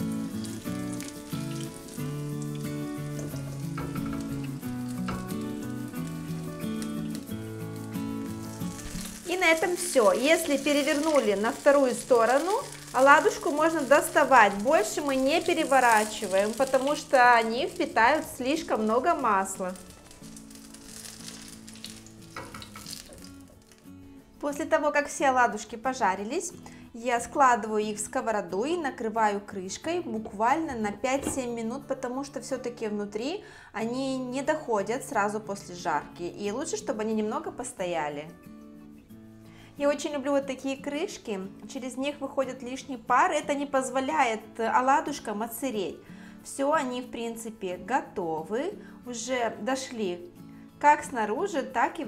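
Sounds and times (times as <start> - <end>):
oil sizzling and crackling: 0.0 - 24.4
background music: 0.0 - 52.0.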